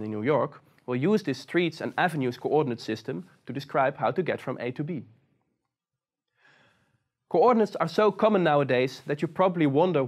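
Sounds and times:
man's faint in-breath: 0:06.3 - 0:07.1.

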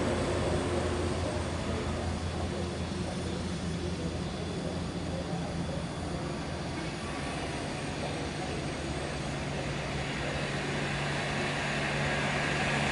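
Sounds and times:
bus diesel engines droning: 0:00.0 - 0:12.9.

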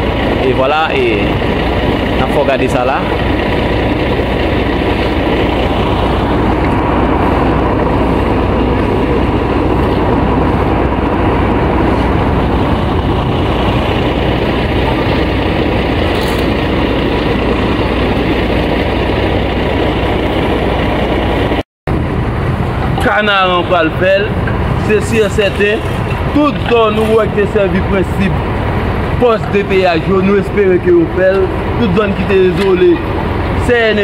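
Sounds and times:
street noise with low rumble: 0:00.0 - 0:34.0.

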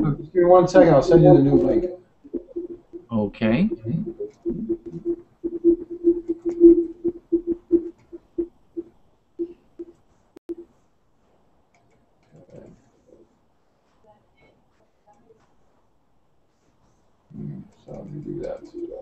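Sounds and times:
audio feedback howling tone: 0:00.0 - 0:09.9, 0:17.9 - 0:19.0.

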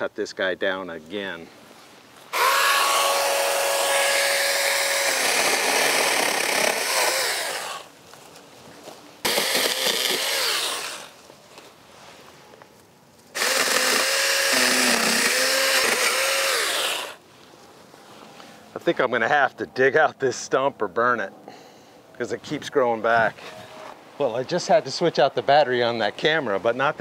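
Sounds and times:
electric chainsaw cutting wood: 0:02.3 - 0:07.9, 0:09.2 - 0:11.2, 0:13.3 - 0:17.2.

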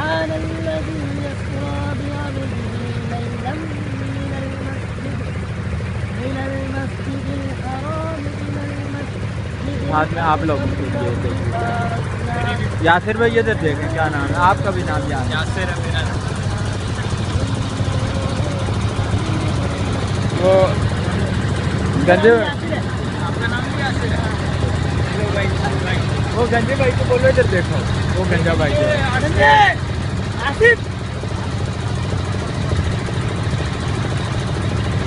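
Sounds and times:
boat engine low drone: 0:00.0 - 0:35.0
men's voices: 0:06.2 - 0:30.9.

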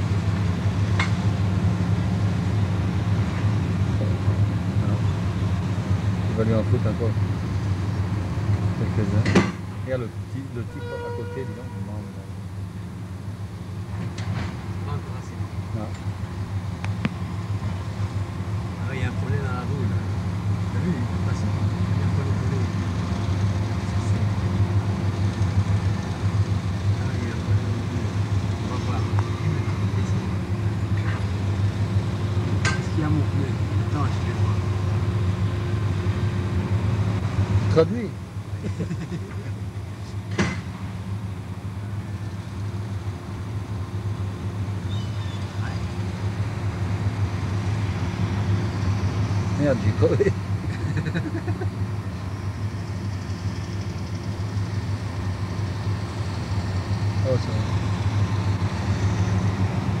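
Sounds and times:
diesel engines droning: 0:00.0 - 1:00.0.

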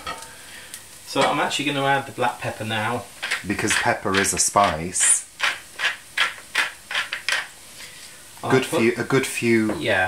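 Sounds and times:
pepper mill grinding: 0:03.2 - 0:07.5.

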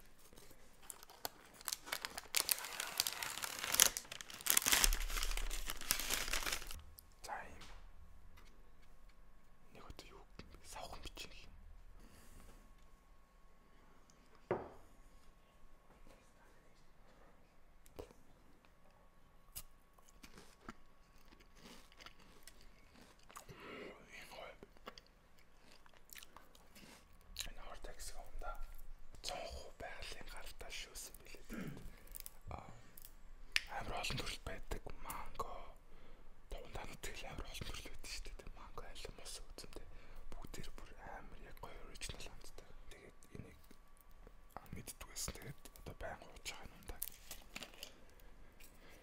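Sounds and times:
person whispering: 0:01.9 - 0:04.9, 0:05.8 - 0:07.8, 0:09.7 - 0:11.6, 0:23.8 - 0:24.7, 0:27.4 - 0:31.7, 0:33.6 - 0:35.8, 0:36.5 - 0:43.7, 0:44.6 - 0:47.2
close chewing and mouth sounds: 0:19.5 - 0:29.6.

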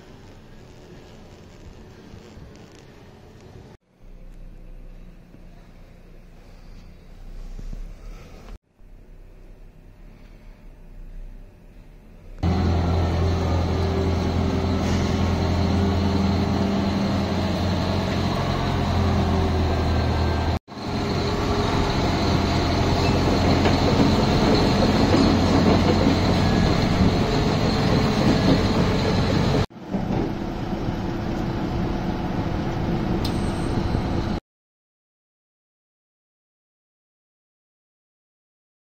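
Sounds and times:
wheel loader diesel engine: 0:03.2 - 0:34.4
loud mechanical noise: 0:12.3 - 0:34.4.

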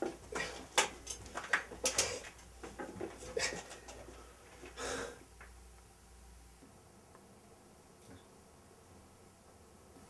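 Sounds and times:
man breathing hard: 0:03.2 - 0:05.2.

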